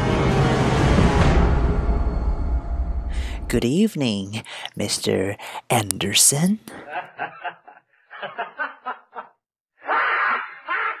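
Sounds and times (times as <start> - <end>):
person laughing: 6.7 - 11.0.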